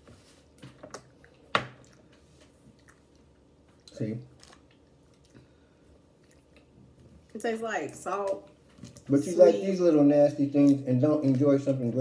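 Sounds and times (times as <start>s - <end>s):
person chewing: 0.9s - 7.0s.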